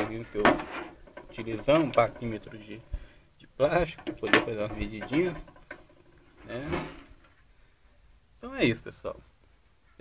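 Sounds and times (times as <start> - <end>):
man speaking: 1.3 - 5.5, 6.4 - 7.1.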